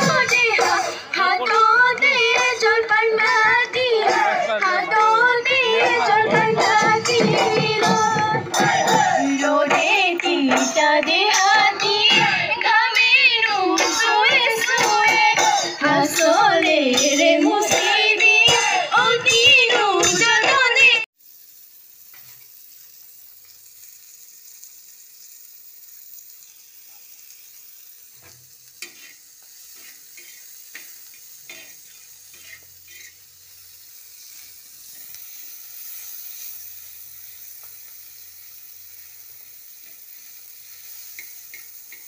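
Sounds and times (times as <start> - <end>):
food sizzling on pan: 0.0 - 42.0
spatula scraping pan: 28.2 - 33.2.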